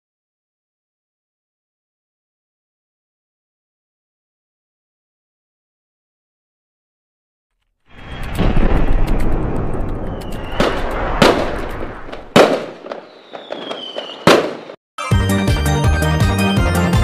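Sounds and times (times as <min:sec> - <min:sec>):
fireworks bangs: 0:07.9 - 0:14.8
fireworks crackling: 0:07.9 - 0:14.8
fireworks whistles falling in pitch: 0:10.0 - 0:14.8.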